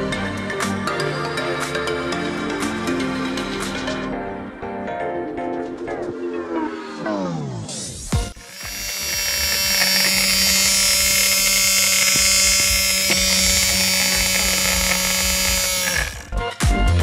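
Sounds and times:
small pump motor whining: 8.3 - 16.4.

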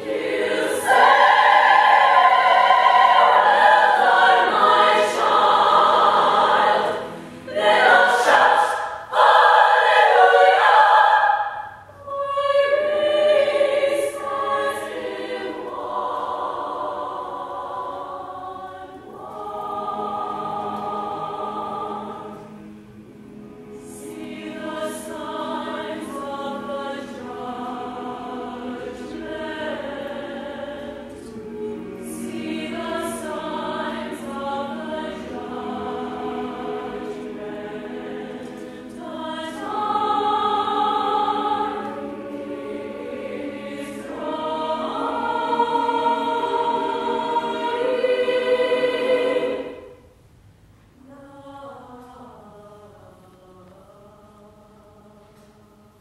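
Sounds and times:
choir singing in chords: 0.0 - 56.0.

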